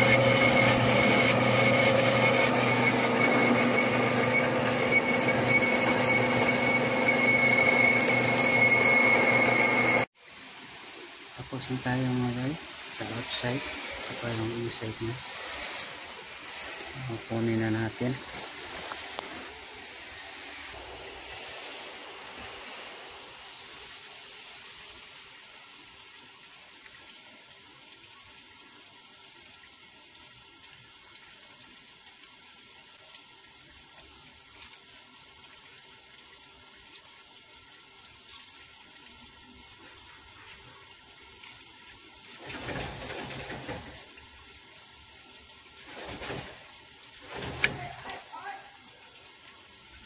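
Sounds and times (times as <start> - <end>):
faint high whine: 0.0 - 10.1.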